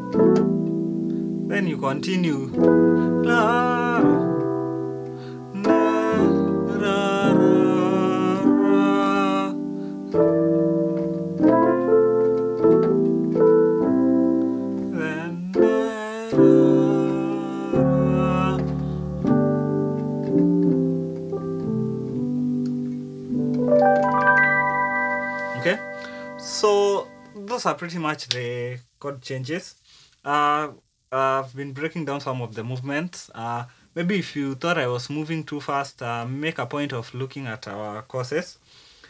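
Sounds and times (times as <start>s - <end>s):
electric piano chords: 0.0s - 27.5s.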